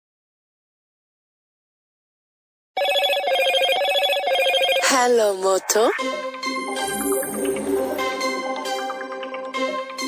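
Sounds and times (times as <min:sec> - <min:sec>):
electronic phone ringtone trilling: 0:02.8 - 0:08.6.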